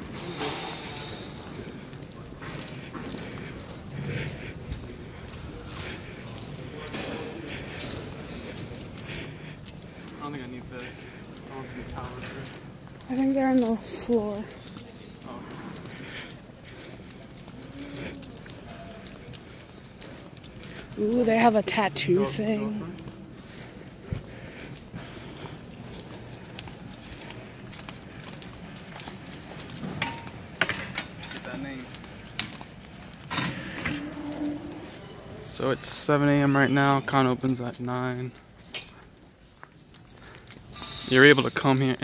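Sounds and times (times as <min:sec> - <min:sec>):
faint voices: 0:00.0 - 0:42.0.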